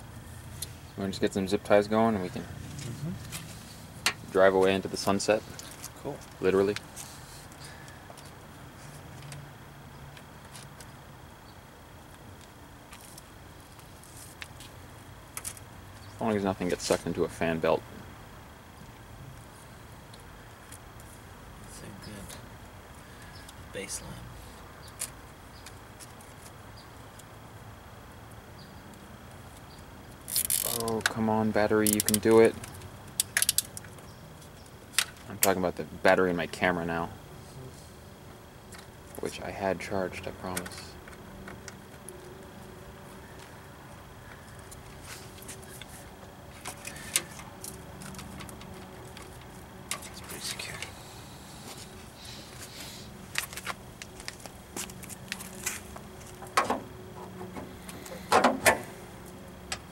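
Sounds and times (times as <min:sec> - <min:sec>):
hands handling wires and plastic: 0:29.5 - 0:31.2, 0:31.8 - 0:35.5, 0:44.3 - 0:50.9, 0:53.3 - 0:59.9.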